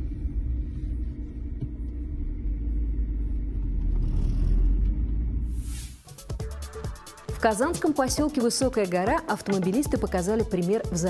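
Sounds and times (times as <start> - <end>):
car engine and road noise: 0.0 - 6.0.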